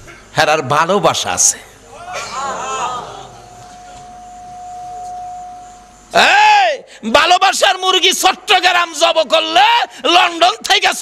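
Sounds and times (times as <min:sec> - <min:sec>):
microphone feedback ringing tone: 0:03.2 - 0:06.2.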